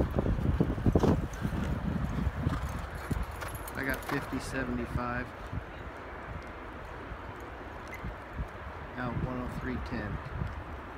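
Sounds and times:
muffled horse hoofbeats galloping: 0:00.0 - 0:08.6.

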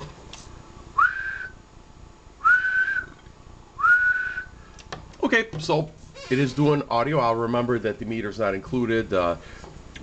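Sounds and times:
person whistling short notes: 0:01.0 - 0:01.6, 0:02.4 - 0:03.2, 0:03.8 - 0:04.6.

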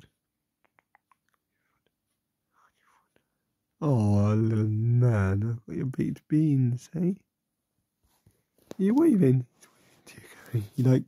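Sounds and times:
man's voice: 0:03.8 - 0:07.2, 0:08.8 - 0:11.0.

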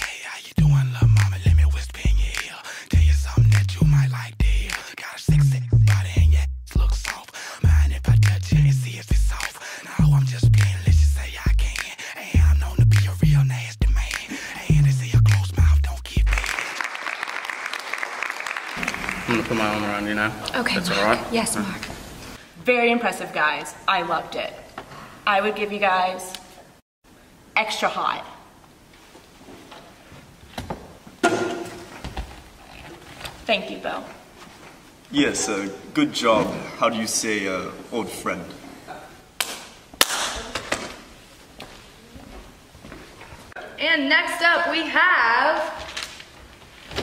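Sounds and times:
deep bass note of dance music: 0:05.3 - 0:07.0
small audience clapping: 0:16.1 - 0:20.3, 0:39.4 - 0:40.8
hands slapping high-five: 0:39.4 - 0:40.8
footsteps on wooden floor: 0:41.6 - 0:43.5.

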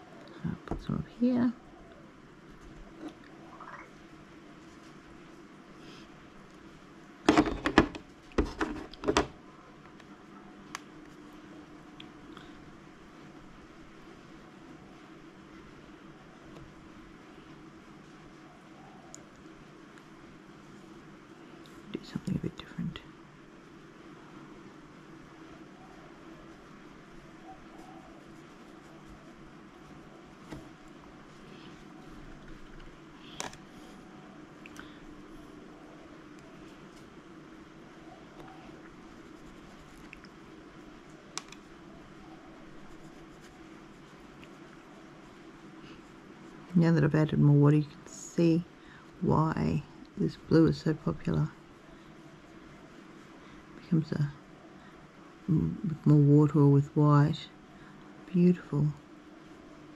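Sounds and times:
low room hum: 0:00.0 - 0:59.9
paintbrush on paper: 0:26.4 - 0:32.7, 0:39.0 - 0:40.2, 0:42.4 - 0:47.2.

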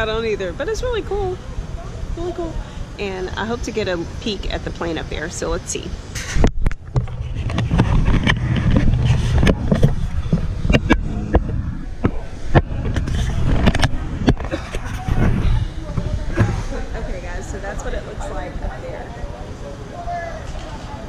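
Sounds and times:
handheld camera rubbing: 0:06.2 - 0:11.6, 0:12.4 - 0:16.6
indistinct voices: 0:07.4 - 0:21.0.

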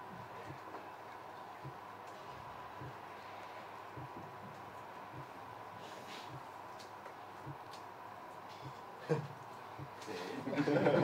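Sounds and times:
steady hum and hiss: 0:00.0 - 0:11.0.

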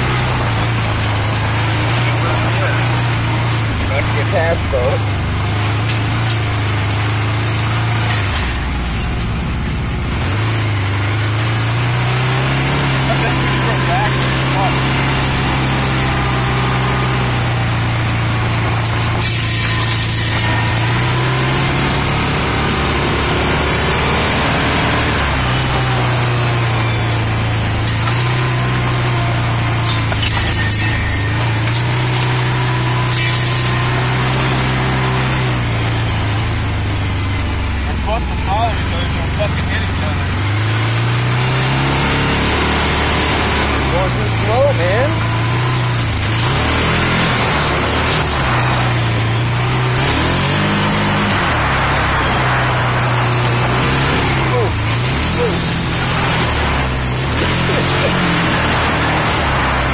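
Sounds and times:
off-road vehicle engine: 0:00.0 - 0:59.9
branches swishing against vehicle: 0:18.3 - 0:21.5, 0:27.5 - 0:35.7.

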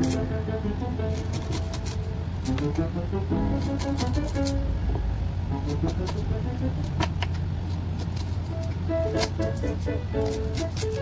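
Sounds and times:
soft background music: 0:00.0 - 0:07.4, 0:08.0 - 0:11.0
steady low hum: 0:00.0 - 0:11.0
knife cutting on wooden board: 0:01.2 - 0:02.6, 0:03.6 - 0:04.6.

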